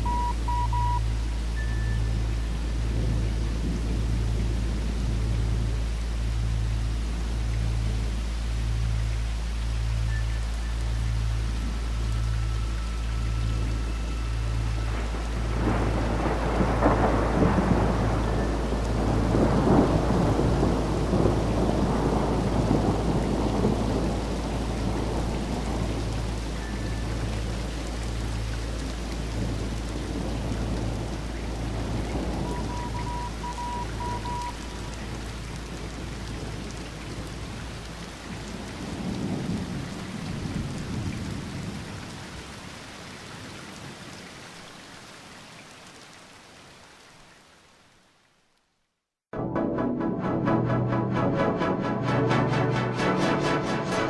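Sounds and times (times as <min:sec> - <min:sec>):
steady rain: 0:00.0 - 0:54.0
rolling thunder: 0:14.8 - 0:42.0.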